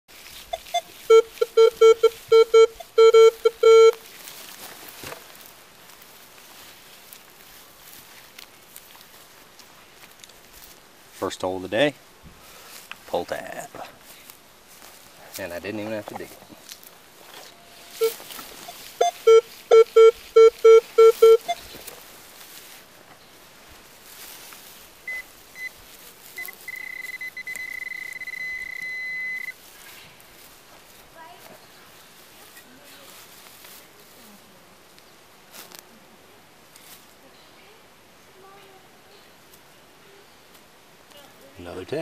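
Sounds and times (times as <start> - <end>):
metal detector low beeps: 0.5 - 4.0, 17.5 - 21.7, 25.1 - 25.8, 26.4 - 29.6
pinpointer chirps and tone: 0.5 - 4.0, 17.5 - 21.7, 25.1 - 25.8, 26.4 - 29.6.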